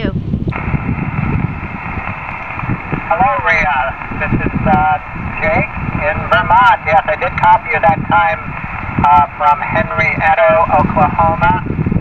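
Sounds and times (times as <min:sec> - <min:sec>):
wind rumble on microphone: 0:00.0 - 0:12.0
radio speaker hissing: 0:00.5 - 0:12.0.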